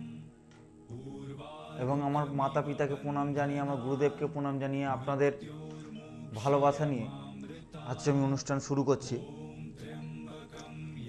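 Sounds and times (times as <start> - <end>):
soft devotional music with drone: 0.0 - 11.0
man's voice: 1.7 - 9.8.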